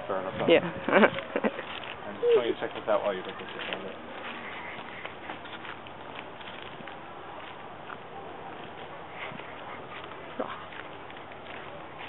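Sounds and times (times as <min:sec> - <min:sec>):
footsteps on wood chips and leaves: 0:01.5 - 0:12.0.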